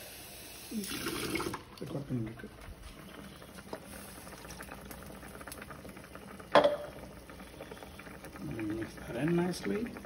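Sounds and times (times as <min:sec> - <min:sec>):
pot simmering with small pops: 0:01.4 - 0:10.0.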